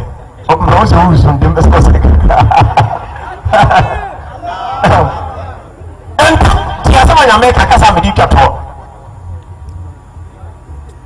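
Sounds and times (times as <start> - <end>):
man speaking into a microphone: 0.0 - 2.3, 6.2 - 8.8.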